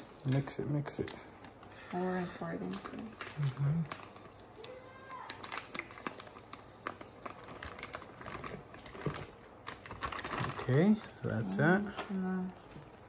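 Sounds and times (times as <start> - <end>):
plastic bag crinkling: 0.9 - 13.0.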